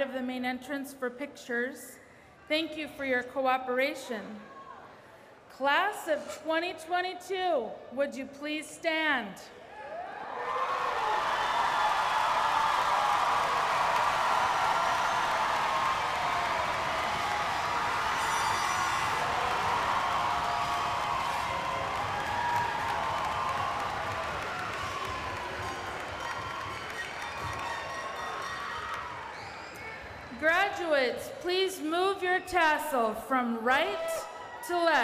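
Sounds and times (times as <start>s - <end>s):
crowd cheering and whooping: 9.7s - 30.3s
crowd clapping: 10.7s - 30.1s.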